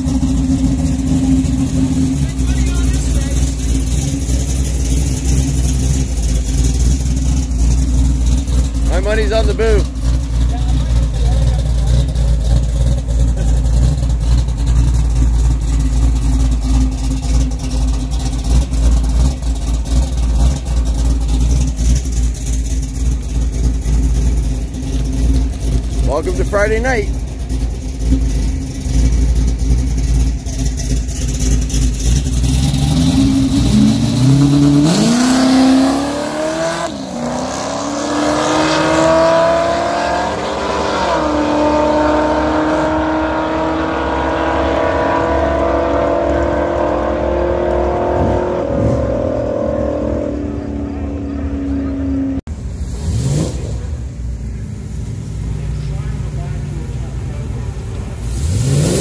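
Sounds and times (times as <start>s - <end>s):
drag car engines rumbling: 0.0s - 59.0s
drag cars revving and accelerating: 0.0s - 59.0s.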